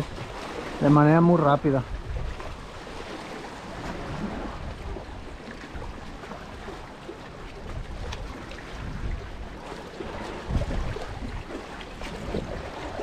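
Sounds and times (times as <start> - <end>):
small waves lapping against rocks: 0.0 - 13.0.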